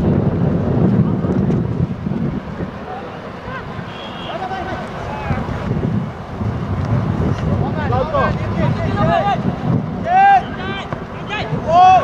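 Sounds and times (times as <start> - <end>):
wind rumble on microphone: 0.0 - 12.0
voices shouting: 2.8 - 5.7, 7.6 - 12.0.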